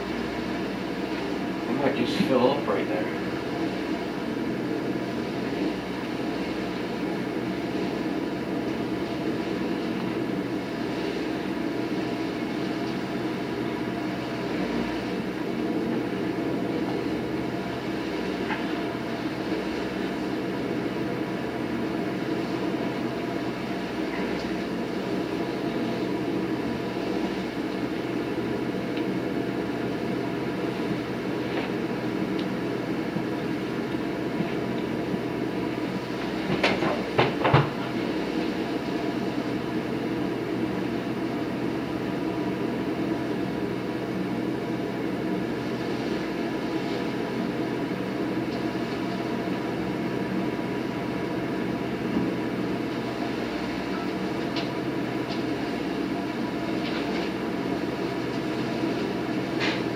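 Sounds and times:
leaf vacuum engine and fan drone: 0.0 - 59.9.

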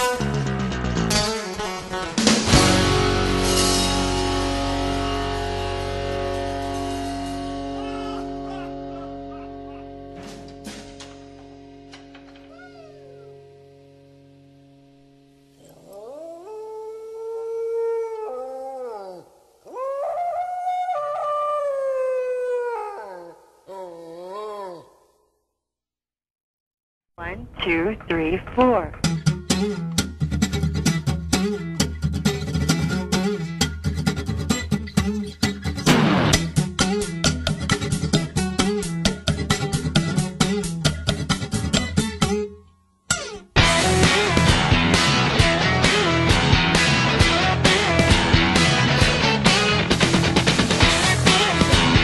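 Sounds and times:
instrumental guitar music: 0.0 - 15.6, 27.6 - 52.0.

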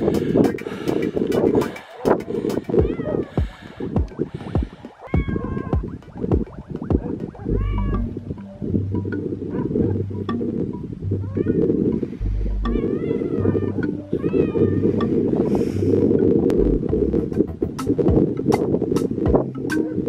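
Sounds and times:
cat meowing: 2.8 - 3.5, 5.0 - 5.9, 7.4 - 8.2, 11.2 - 11.7, 12.7 - 14.9
low rumble with heavy thumps: 16.5 - 18.4.

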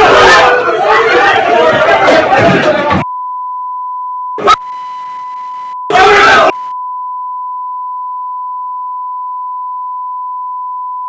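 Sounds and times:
censor bleep tone: 3.0 - 5.9, 6.5 - 11.0.

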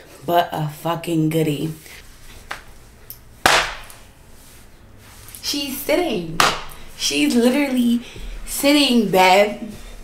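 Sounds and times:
hand slap: 2.5 - 2.7, 3.4 - 4.0, 6.4 - 6.8.

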